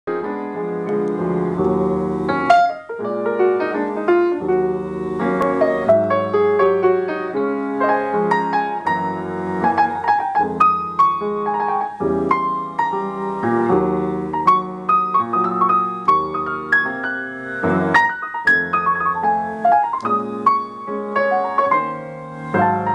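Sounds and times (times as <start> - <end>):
grand piano playing: 0.1 - 22.9.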